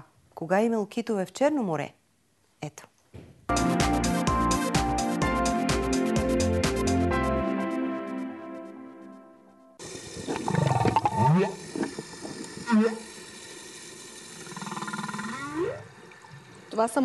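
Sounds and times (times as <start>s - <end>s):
humpback whale song: 10.2s - 13.2s, 14.4s - 16.0s.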